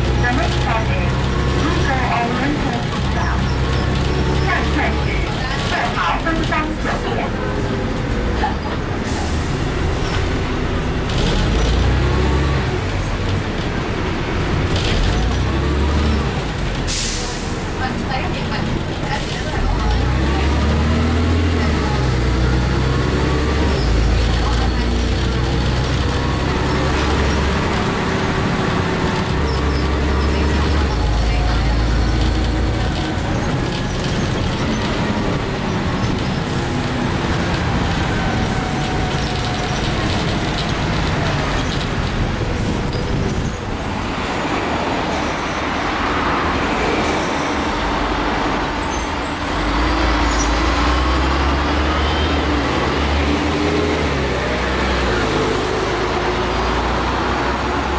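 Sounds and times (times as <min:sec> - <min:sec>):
bus diesel engine droning: 0:00.0 - 0:57.9.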